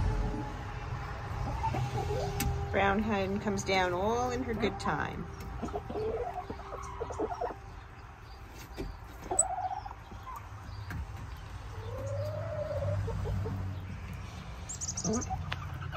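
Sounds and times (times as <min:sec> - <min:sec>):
hens calling softly: 0:03.9 - 0:10.7.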